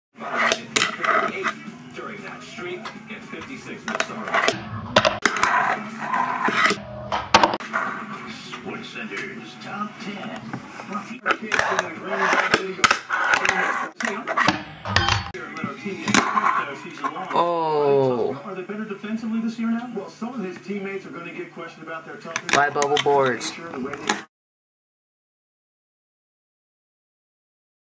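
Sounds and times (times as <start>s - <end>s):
television sports broadcast: 0.2s - 24.3s.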